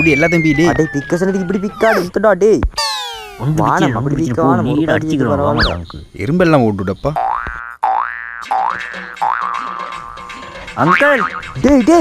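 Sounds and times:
cartoon boing sound effect: 0:07.2 - 0:10.3.

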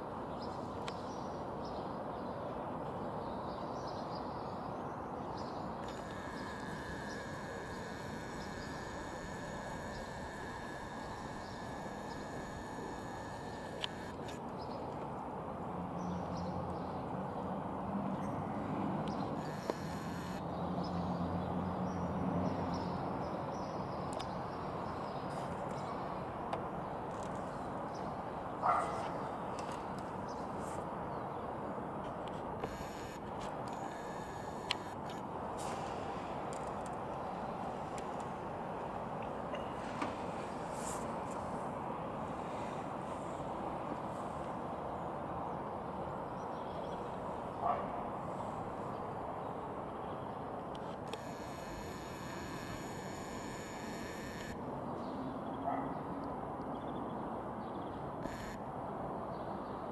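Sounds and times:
outdoor background noise: 0:00.0 - 0:59.9.

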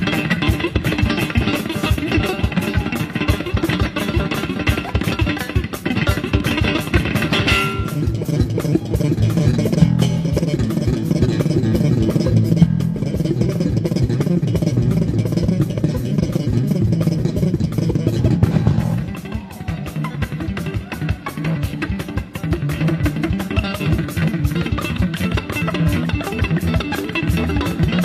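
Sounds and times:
drum kit: 0:00.0 - 0:28.0
electric bass guitar: 0:00.0 - 0:28.0
electric guitar: 0:00.0 - 0:28.0.

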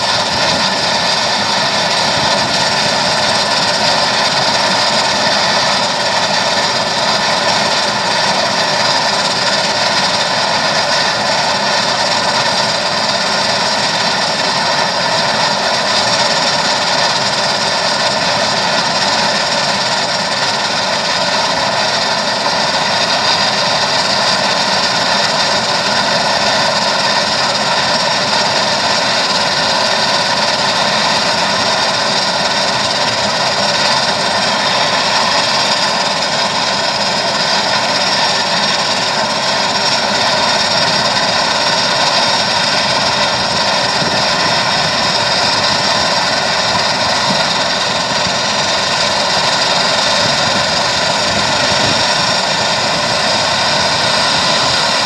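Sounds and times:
turboprop engine idling: 0:00.0 - 0:55.0.

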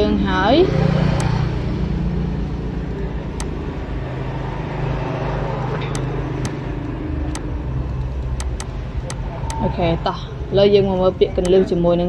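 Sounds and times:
low background rumble with hum: 0:05.8 - 0:12.0
computer mouse clicks: 0:08.4 - 0:09.6.

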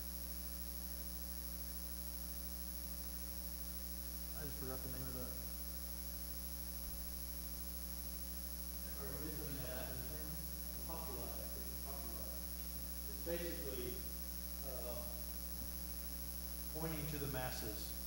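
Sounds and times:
electrical mains hum: 0:00.0 - 0:18.0.

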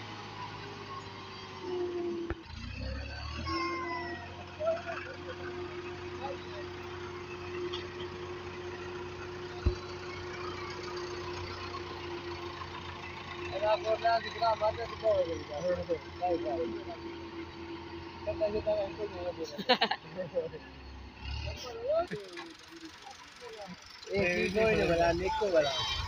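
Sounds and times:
tractor diesel engine droning: 0:00.0 - 0:26.0.

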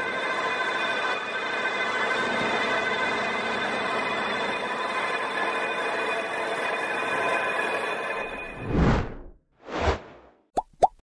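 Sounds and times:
bubbly pops with rising pitch: 0:10.6 - 0:11.0.

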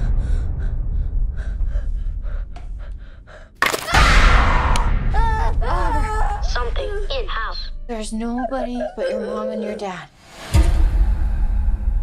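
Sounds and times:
low rumble: 0:00.0 - 0:03.6.

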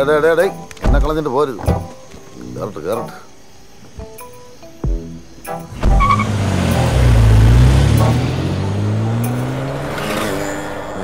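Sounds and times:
car engine revving: 0:05.7 - 0:11.0.

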